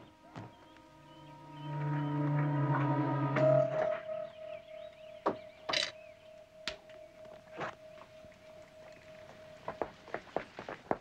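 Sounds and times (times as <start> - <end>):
faint steady tone: 0.0 - 10.7
footsteps on paved path: 6.9 - 11.0.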